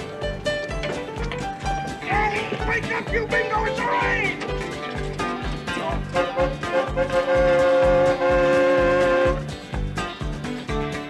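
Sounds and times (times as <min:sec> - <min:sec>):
steady low beat: 0:00.0 - 0:11.0.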